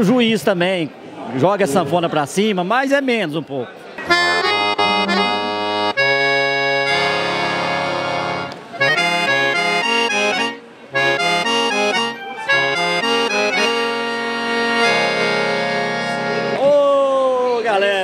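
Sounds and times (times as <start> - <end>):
solo piano accordion tune: 4.0 - 16.6.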